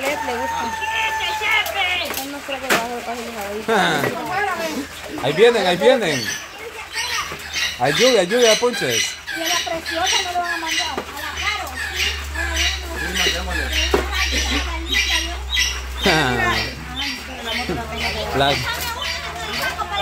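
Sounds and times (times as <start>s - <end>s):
people talking: 0.0s - 20.0s
bird squawking: 3.7s - 20.0s.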